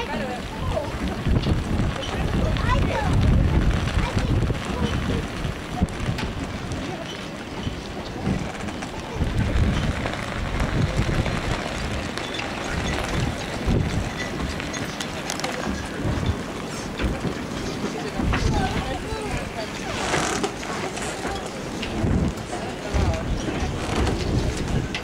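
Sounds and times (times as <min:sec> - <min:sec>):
faint voices: 0:00.0 - 0:25.0
outdoor hubbub: 0:00.0 - 0:25.0
wind buffeting microphone: 0:00.0 - 0:25.0.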